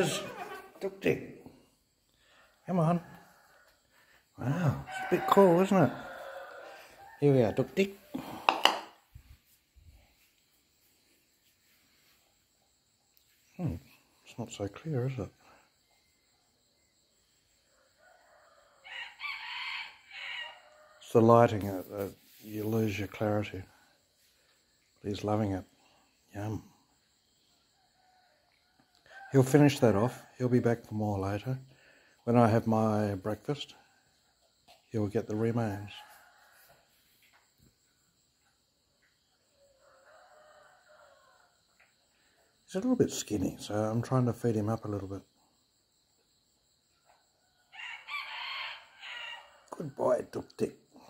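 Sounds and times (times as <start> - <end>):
rooster crowing: 2.7 - 8.8, 17.7 - 21.1, 39.5 - 42.0, 47.4 - 49.9.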